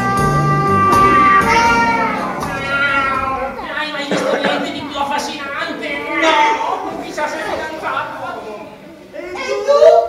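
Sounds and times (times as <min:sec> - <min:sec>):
brass music cue: 0:00.0 - 0:03.2
people imitating cat meows: 0:00.0 - 0:03.7.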